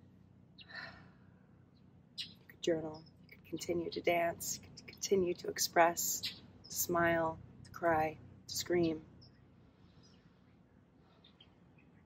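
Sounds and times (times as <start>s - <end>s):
faint low hum: 0.0s - 12.0s
woman sighing: 0.7s - 1.2s.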